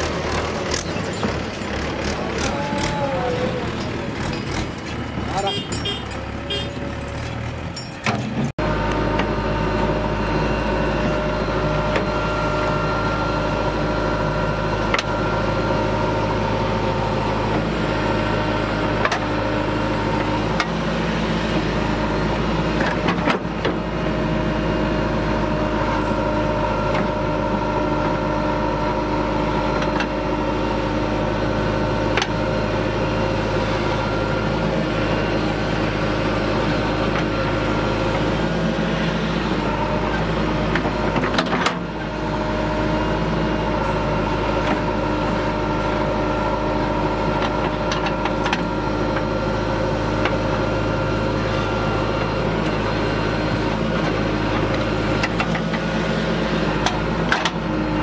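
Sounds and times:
diesel engine under load: 0:00.0 - 0:58.0
different engine sound: 0:00.0 - 0:58.0.

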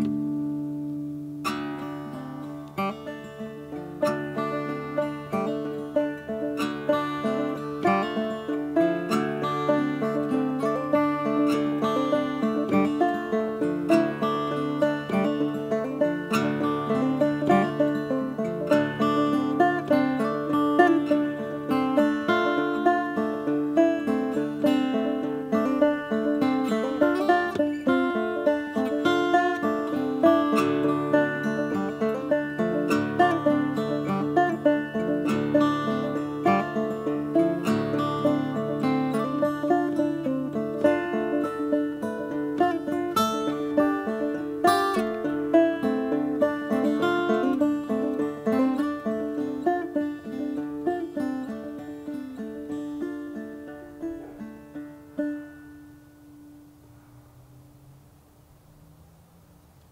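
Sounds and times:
banjo: 0:00.0 - 0:57.9
fingerpicked acoustic guitar: 0:00.0 - 0:59.9.

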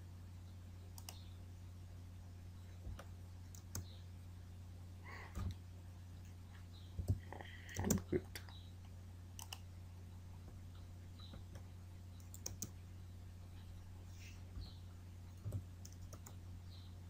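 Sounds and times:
steady low hum: 0:00.0 - 0:17.0
computer mouse clicks: 0:01.0 - 0:01.3, 0:02.9 - 0:03.9, 0:09.4 - 0:09.7, 0:11.2 - 0:12.8, 0:15.4 - 0:16.4
keyboard clicks: 0:01.0 - 0:01.3, 0:02.9 - 0:03.9, 0:07.0 - 0:08.5, 0:09.4 - 0:09.6, 0:11.2 - 0:12.8, 0:15.4 - 0:16.4.

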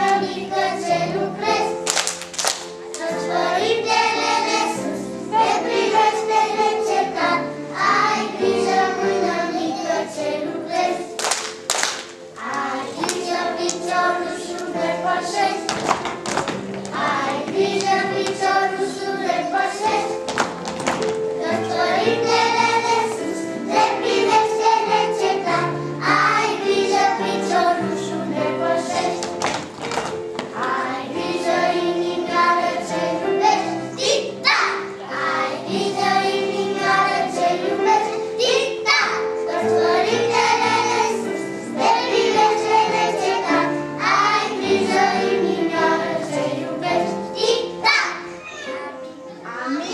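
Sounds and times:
children singing in unison: 0:00.0 - 0:02.0, 0:02.7 - 0:11.3, 0:12.4 - 0:16.0, 0:16.9 - 0:20.4, 0:21.2 - 0:29.6, 0:30.4 - 0:49.9
musical accompaniment: 0:00.0 - 0:49.9.

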